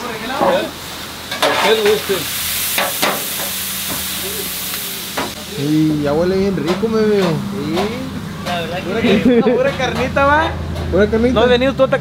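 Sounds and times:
meat sizzling on a griddle: 0.0 - 9.9.

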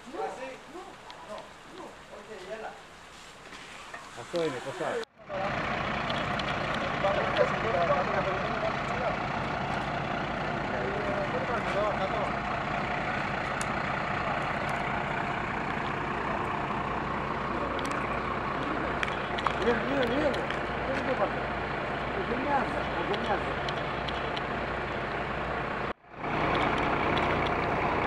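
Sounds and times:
diesel engine idling: 5.1 - 28.0.

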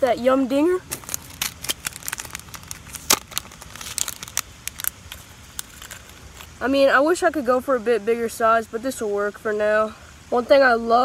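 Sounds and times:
plastic handling clicks and crinkles: 0.8 - 6.6.

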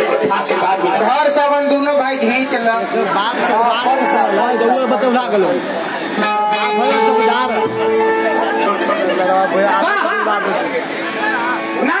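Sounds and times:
music playing: 2.8 - 12.0.

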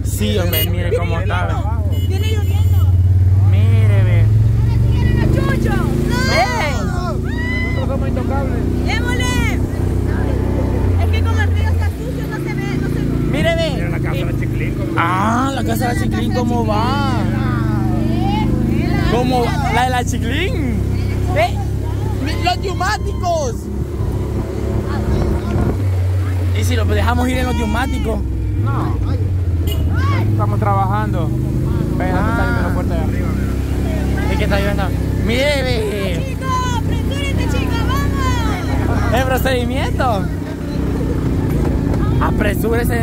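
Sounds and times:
people talking: 0.0 - 23.6, 24.8 - 29.3, 29.9 - 43.0
motorcycle engine running: 0.0 - 43.0.

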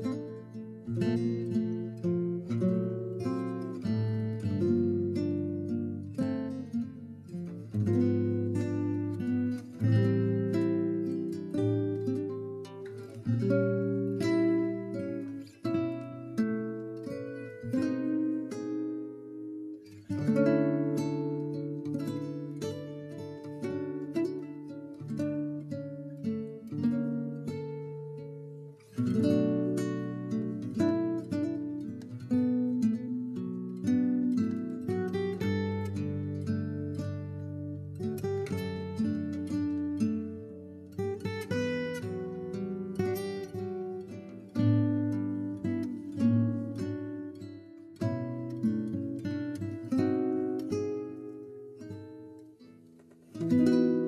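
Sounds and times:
plucked acoustic guitar: 0.0 - 54.0.

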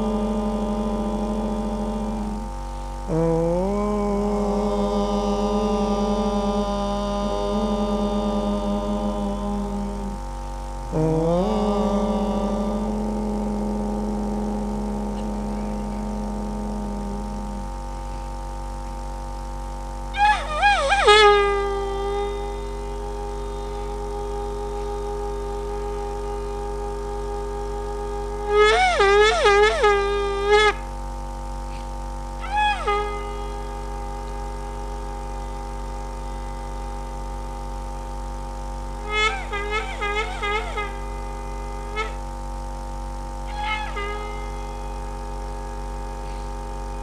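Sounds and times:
worshippers chanting om: 0.0 - 18.6, 20.1 - 30.9, 31.8 - 47.0
conch shell blown: 0.0 - 47.0.

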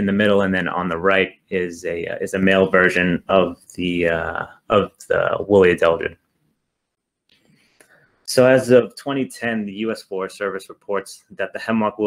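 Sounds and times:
person speaking: 0.0 - 6.2, 8.3 - 12.0
faint breath: 7.4 - 8.3.

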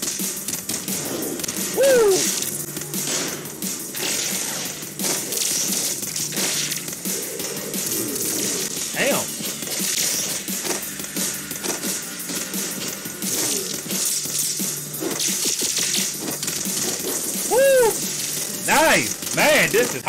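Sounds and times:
soundtrack music: 0.0 - 20.0
loud pitched cry: 1.8 - 2.4, 17.5 - 18.0.

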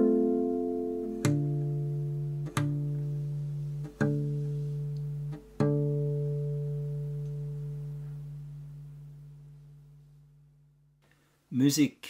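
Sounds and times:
plucked guitar chord ringing: 0.0 - 10.9.

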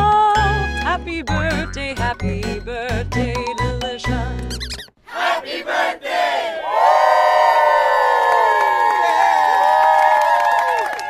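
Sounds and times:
solo voice singing birthday song: 0.0 - 5.3
group of voices cheering: 6.3 - 11.0.

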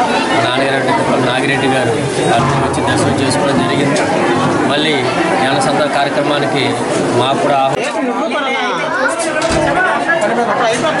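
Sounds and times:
people talking at once: 0.0 - 11.0
music: 2.4 - 5.8.

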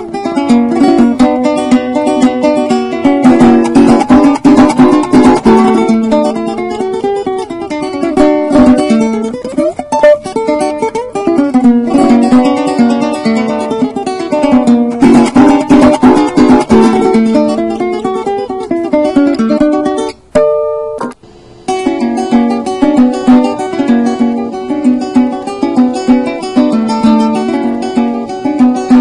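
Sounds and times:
cuatro picked and strummed: 0.0 - 29.0
strummed chords: 0.0 - 29.0.

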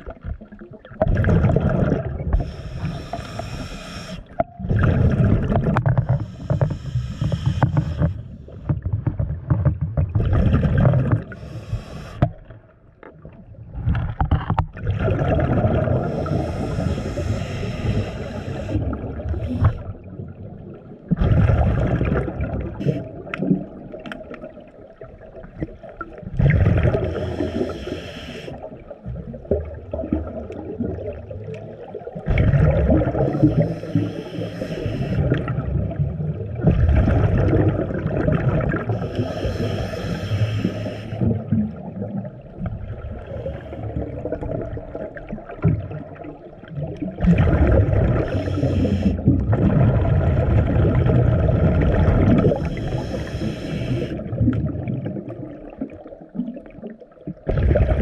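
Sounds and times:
diver breathing through regulator: 2.3 - 4.4, 5.9 - 8.8, 11.2 - 12.5, 15.8 - 20.0, 26.9 - 28.8, 33.0 - 35.7, 38.8 - 41.5, 48.1 - 49.4, 52.2 - 54.4.

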